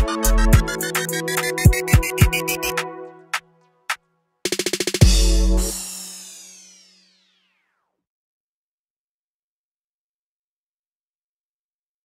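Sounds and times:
electronic drum beat: 0:00.0 - 0:03.4, 0:04.5 - 0:07.0
lone percussion hits: 0:04.5 - 0:06.4
fast snare roll: 0:04.5 - 0:07.4
low bass note: 0:05.0 - 0:06.3.

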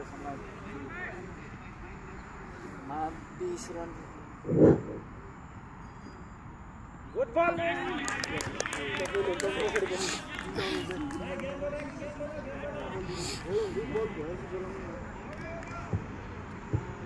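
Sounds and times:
men calling out: 0:09.6 - 0:14.8.

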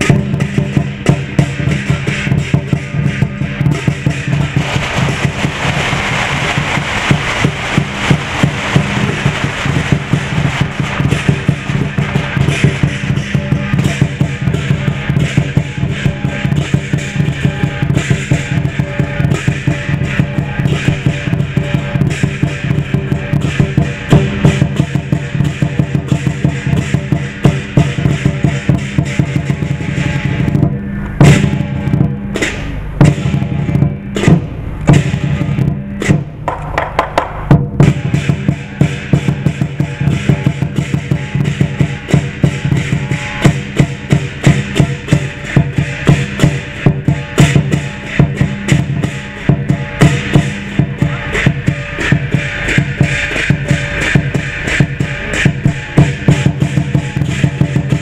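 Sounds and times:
cymbals clashing: 0:00.0 - 0:58.0
large drum beating fast: 0:00.0 - 0:58.0.

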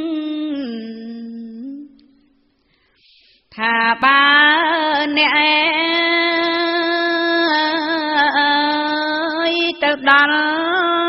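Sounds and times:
woman chanting: 0:00.0 - 0:02.2, 0:03.5 - 0:11.0.

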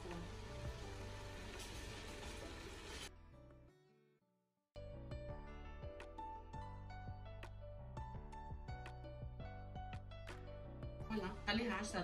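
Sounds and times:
sauce sizzling in a pot: 0:00.0 - 0:03.2
background music: 0:00.0 - 0:04.2, 0:04.8 - 0:12.0.

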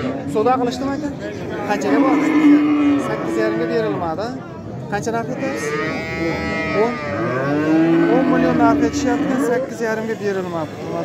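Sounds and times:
cattle mooing: 0:01.6 - 0:04.2, 0:05.3 - 0:09.9.

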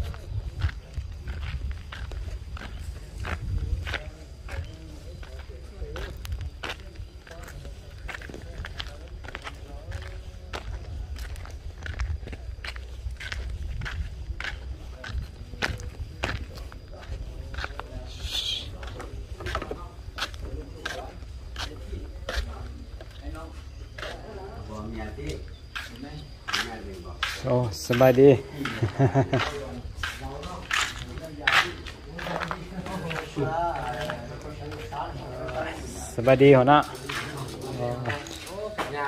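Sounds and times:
wind rumble on microphone: 0:00.0 - 0:05.4, 0:09.9 - 0:17.7
footsteps crunching on gravel: 0:00.0 - 0:35.8.

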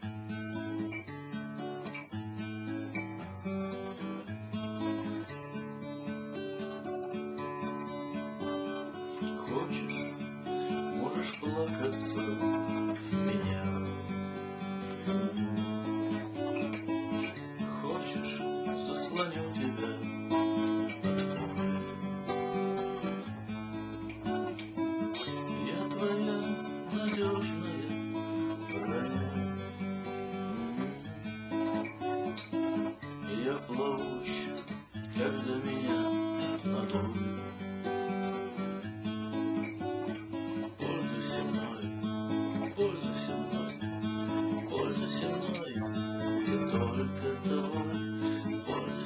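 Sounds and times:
acoustic guitar strumming chords: 0:00.0 - 0:49.0.

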